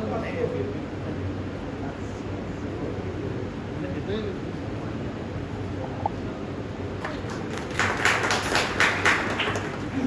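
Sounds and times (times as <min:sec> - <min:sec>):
people clapping: 0:07.0 - 0:10.0.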